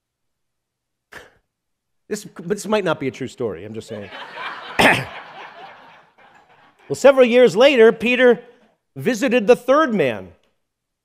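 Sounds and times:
man speaking: 0:02.1 - 0:04.2, 0:06.9 - 0:10.4
audience chuckling: 0:03.9 - 0:07.0.

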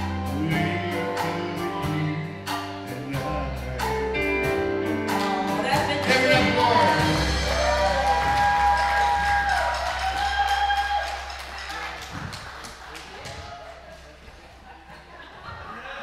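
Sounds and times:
country band playing: 0:00.0 - 0:12.2.

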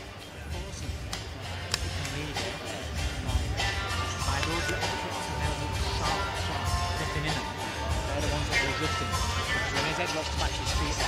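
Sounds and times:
background music with low beat: 0:00.0 - 0:11.0
faint voices: 0:00.0 - 0:11.0.

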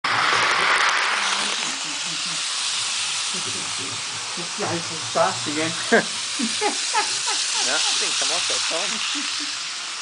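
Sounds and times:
model train passing: 0:00.1 - 0:10.0.

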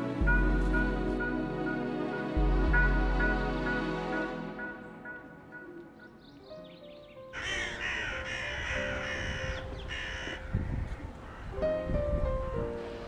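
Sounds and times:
soft background music: 0:00.0 - 0:13.0
crow cawing: 0:07.4 - 0:11.6.

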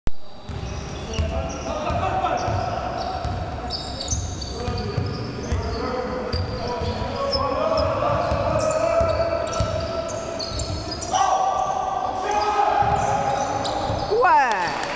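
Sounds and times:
sneakers squeaking on floor: 0:00.2 - 0:14.5
basketball bouncing on court: 0:00.5 - 0:07.0, 0:07.8 - 0:11.0, 0:12.8 - 0:14.7.

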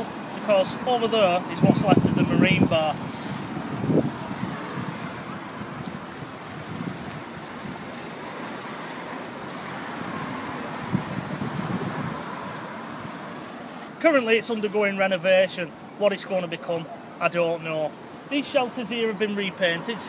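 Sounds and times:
road traffic passing: 0:00.0 - 0:20.0
wind on microphone: 0:01.5 - 0:08.5, 0:09.9 - 0:13.6.

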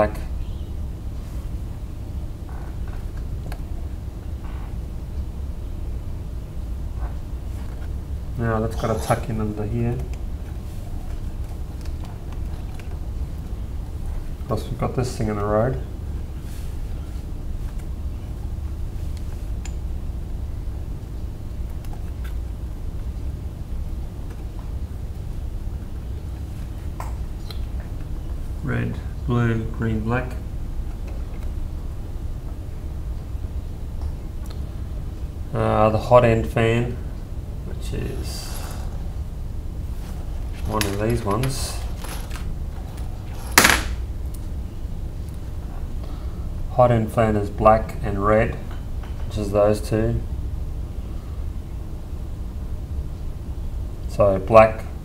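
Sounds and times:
low room rumble: 0:00.0 - 0:55.0
low steady hum: 0:00.0 - 0:55.0
rustling hiss of cables: 0:16.0 - 0:19.6, 0:39.8 - 0:44.6.

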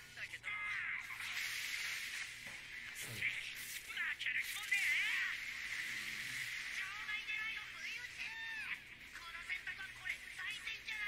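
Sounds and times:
high-pitched cartoon dialogue: 0:00.0 - 0:01.5, 0:03.0 - 0:11.0.

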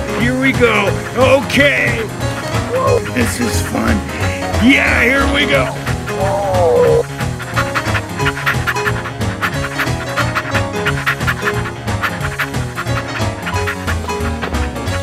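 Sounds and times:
background music with beat: 0:00.0 - 0:15.0
dog panting: 0:00.0 - 0:15.0.

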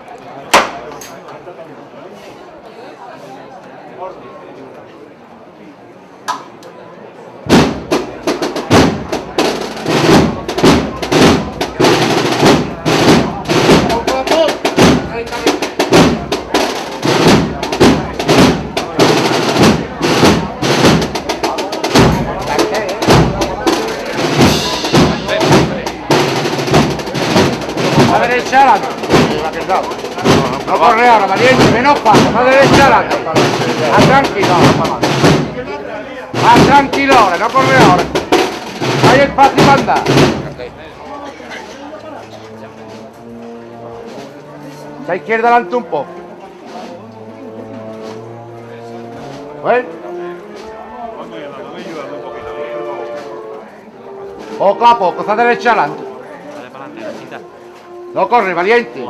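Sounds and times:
crowd voices: 0:00.0 - 0:59.0
marching drums: 0:07.4 - 0:41.8, 0:53.0 - 0:58.9.

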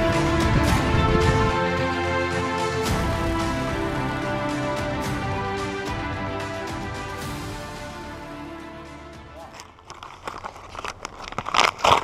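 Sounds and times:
background music: 0:00.0 - 0:09.8
gift wrapping paper crinkling: 0:09.4 - 0:12.0.

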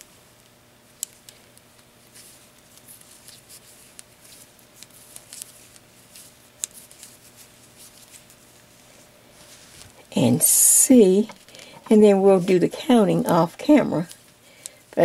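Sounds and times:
yarn rustling: 0:01.1 - 0:15.0.

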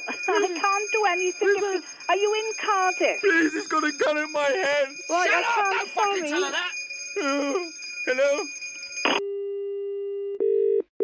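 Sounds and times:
engaged tone beeps: 0:00.3 - 0:09.2
steady telephone tone: 0:08.6 - 0:10.9.

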